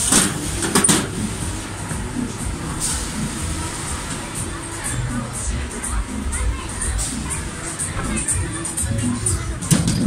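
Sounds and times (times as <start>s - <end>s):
steady low rumble: 0.0s - 9.8s.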